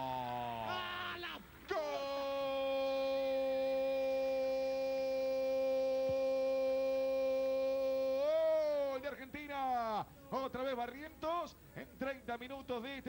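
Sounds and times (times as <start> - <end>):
man shouting drawn-out goal cry: 0.0 - 10.1.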